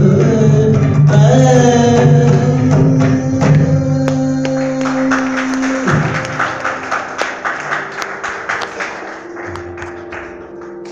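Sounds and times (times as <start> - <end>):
audience clapping: 4.0 - 10.9.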